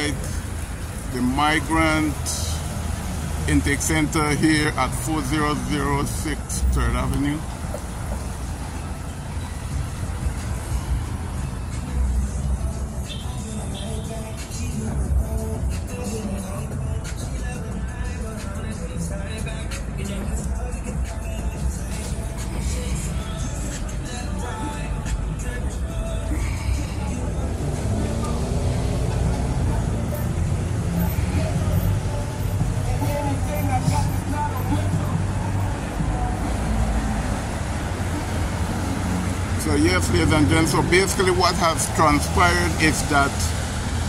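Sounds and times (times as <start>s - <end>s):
road traffic rumble: 0.0s - 44.0s.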